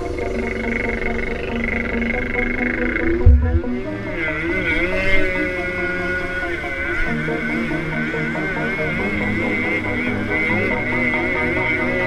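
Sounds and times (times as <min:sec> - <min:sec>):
held low notes: 0:00.0 - 0:12.0
wavering high melody: 0:00.0 - 0:12.0.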